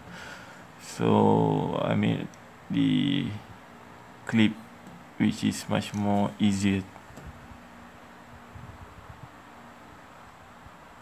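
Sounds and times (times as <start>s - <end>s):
background hiss: 0.0s - 11.0s
faint steady hum: 0.0s - 11.0s.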